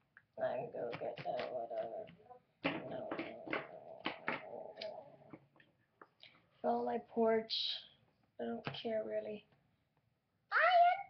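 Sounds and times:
plastic toys knocking and clicking: 0.8 - 5.7.

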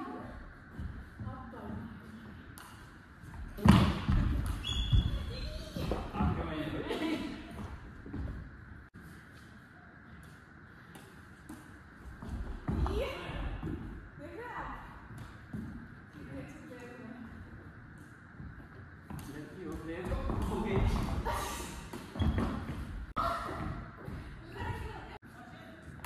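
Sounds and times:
shoe squeak: 4.4 - 5.9, 21.3 - 23.4.

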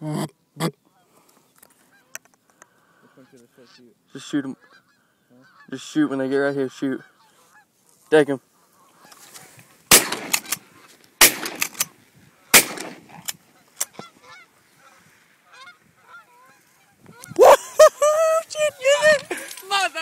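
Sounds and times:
geese honking: 1.8 - 20.0
shotgun shots: 9.9 - 10.6, 11.2 - 11.9, 12.5 - 13.3.

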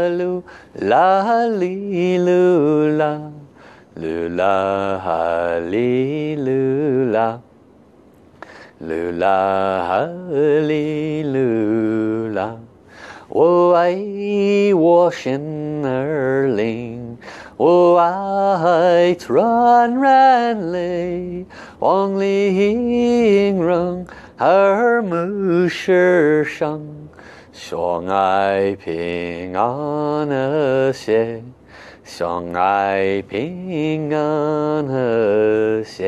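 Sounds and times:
quick breath: 0.4 - 0.8, 3.5 - 3.9, 8.3 - 8.8, 12.8 - 13.3, 17.2 - 17.6, 21.5 - 21.8, 24.1 - 24.4, 27.1 - 27.5, 31.6 - 32.0.

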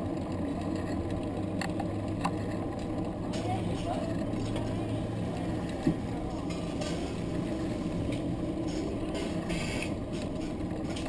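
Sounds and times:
vehicle engine humming: 0.0 - 11.0
faint voices: 3.1 - 10.5.

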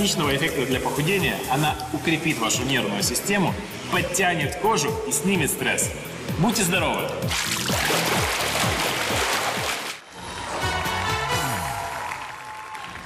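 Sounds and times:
pool water splashing: 7.1 - 10.1.

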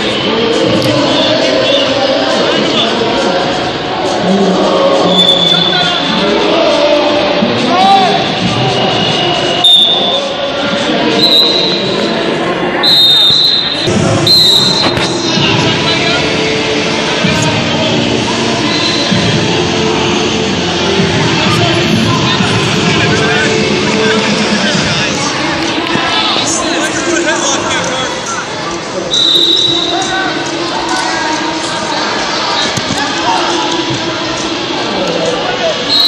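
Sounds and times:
voices echoing in a hall: 0.0 - 36.0
high whistle-like tone: 8.8 - 10.3, 11.2 - 12.0, 12.8 - 15.0, 18.7 - 19.2, 29.1 - 30.1.

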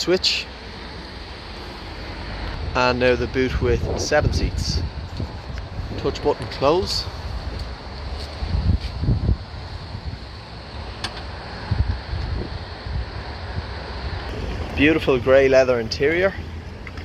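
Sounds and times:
wind buffeting microphone: 2.4 - 17.0.

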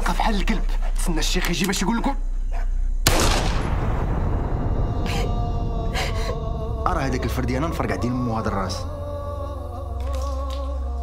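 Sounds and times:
low steady drone: 0.0 - 11.0.

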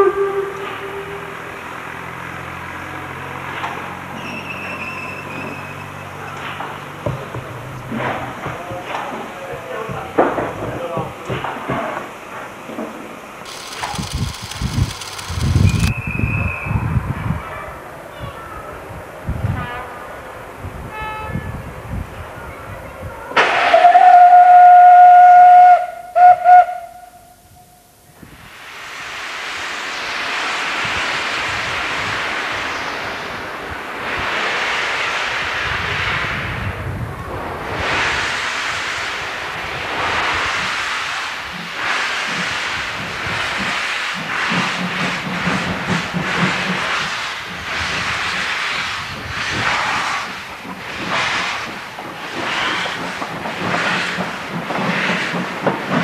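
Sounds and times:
steam locomotive whistle: 0.0 - 1.6, 23.7 - 27.7
steam hissing: 13.5 - 15.9, 28.2 - 36.7, 37.7 - 56.0.

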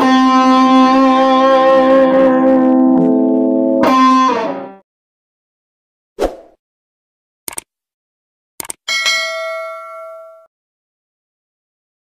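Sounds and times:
notification bell ding: 8.9 - 10.5.

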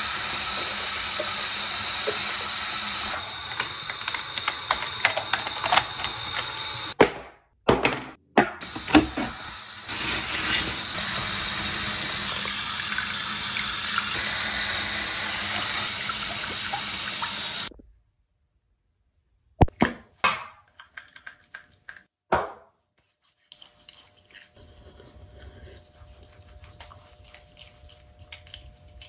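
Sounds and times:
tap water running into sink: 0.0 - 6.5, 8.6 - 14.2, 15.3 - 17.7.

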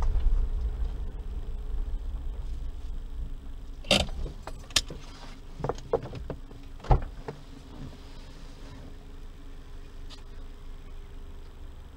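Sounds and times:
low rumble: 0.0 - 11.2.

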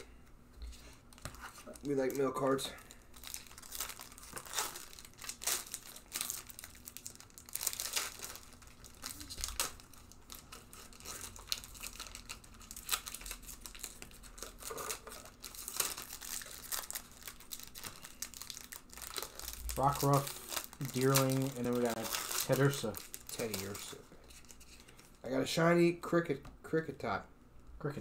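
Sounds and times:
foil wrappers crinkling: 0.7 - 25.2.

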